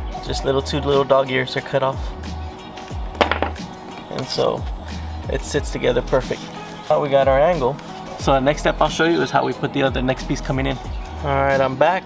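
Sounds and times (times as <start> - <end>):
background music with bass line: 0.0 - 12.0
wooden boards knocking: 3.2 - 3.7.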